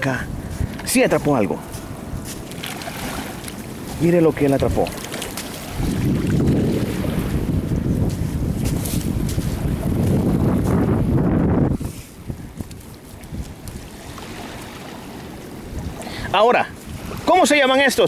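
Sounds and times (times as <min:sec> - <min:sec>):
small waves washing on shore: 0:00.0 - 0:18.0
wind buffeting microphone: 0:00.0 - 0:18.0.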